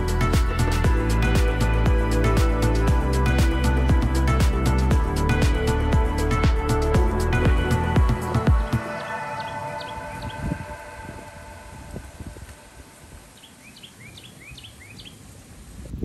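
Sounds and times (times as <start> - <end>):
music with a beat: 0.0 - 9.2
bird chirping: 8.6 - 11.0, 13.3 - 15.2.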